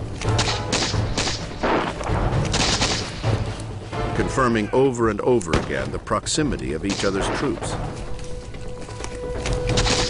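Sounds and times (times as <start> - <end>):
musket shots: 0.2 - 3.4, 6.8 - 7.8, 9.6 - 10.0.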